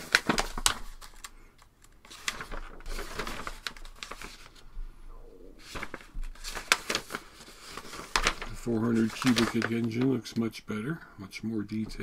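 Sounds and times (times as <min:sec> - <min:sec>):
paper sheets rustling: 0:00.0 - 0:04.7, 0:05.6 - 0:10.2.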